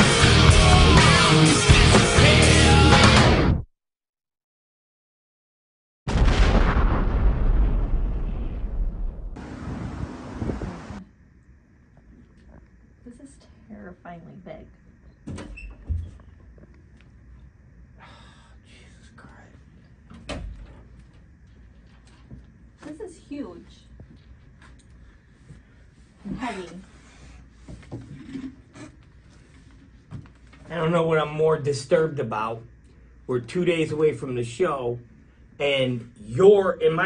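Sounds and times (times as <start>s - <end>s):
rumbling explosion rush: 6.1s - 11.0s.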